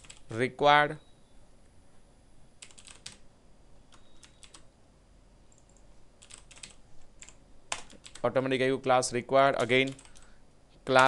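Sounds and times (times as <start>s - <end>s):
keyboard keystrokes: 3.9s - 4.6s.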